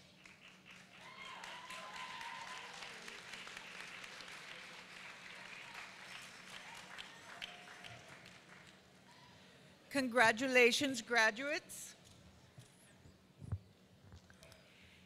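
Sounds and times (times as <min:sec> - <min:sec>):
faint audience applause: 0:00.0 - 0:09.3.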